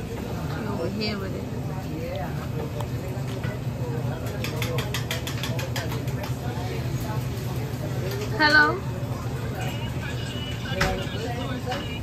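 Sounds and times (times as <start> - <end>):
faint voices: 0.0 - 12.0
low hum of kitchen machinery: 0.0 - 12.0.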